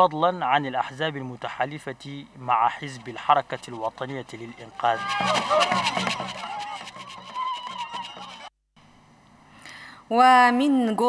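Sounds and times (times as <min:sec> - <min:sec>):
rapid beat: 0:04.7 - 0:08.5.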